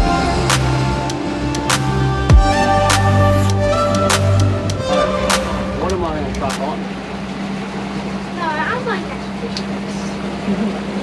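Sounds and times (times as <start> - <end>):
outboard motor running: 0.0 - 11.0
wind and water rushing: 4.6 - 10.4.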